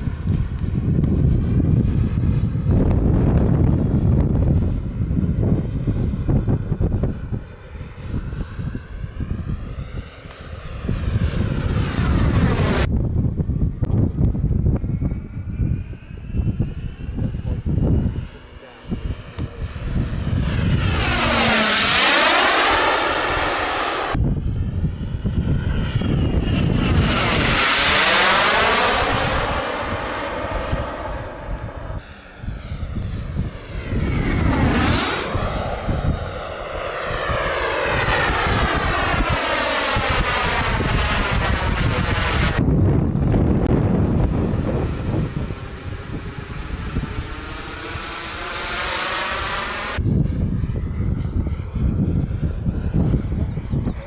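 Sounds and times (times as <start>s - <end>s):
model jet turbine whine: 0.0s - 54.0s.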